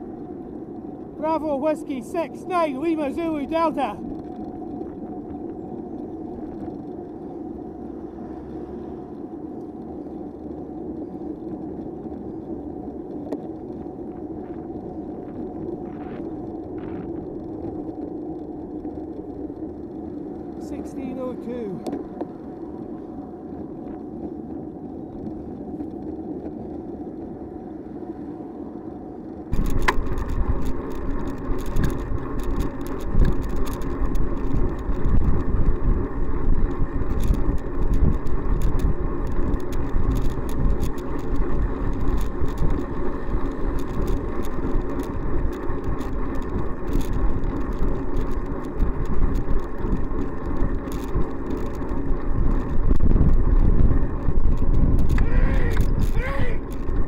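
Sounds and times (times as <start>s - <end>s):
bicycle rattles and clicks: 0.0s - 57.0s
road and wind rumble: 0.0s - 57.0s.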